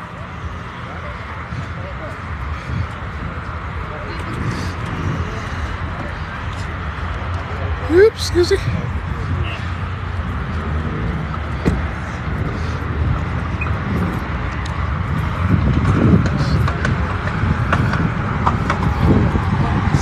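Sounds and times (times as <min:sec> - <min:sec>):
people talking: 0:00.0 - 0:09.9, 0:16.0 - 0:20.0.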